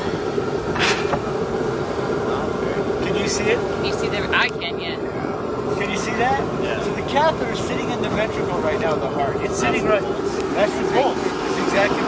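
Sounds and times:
mechanical hum: 0.0s - 12.0s
short hiss: 0.8s - 1.2s.

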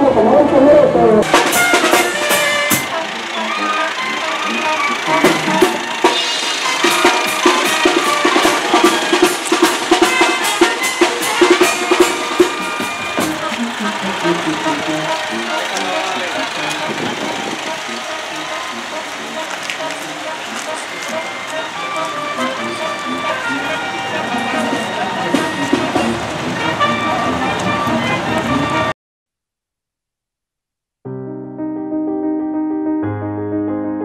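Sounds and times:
crowd voices: 0.0s - 28.9s
music: 0.0s - 29.0s, 31.1s - 34.0s
sharp drum beats: 1.2s - 23.4s, 24.5s - 26.6s.

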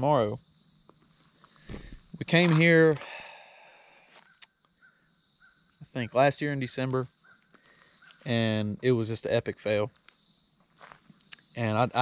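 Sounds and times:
high insect drone: 0.0s - 12.0s.

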